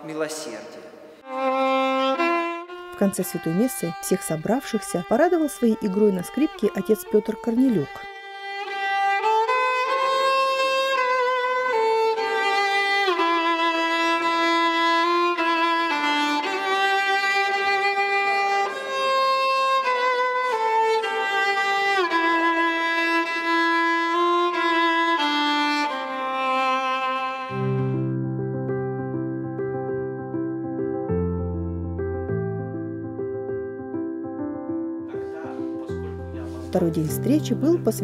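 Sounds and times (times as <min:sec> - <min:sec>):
solo violin melody: 0:01.2 - 0:28.3, 0:35.1 - 0:38.0.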